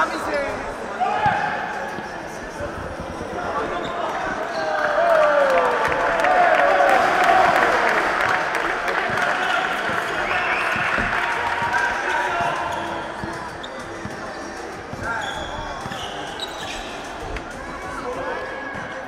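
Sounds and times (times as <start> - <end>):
chatter and shouts in a gym: 0.0 - 19.0
sneakers squeaking: 3.4 - 5.0, 8.9 - 19.0.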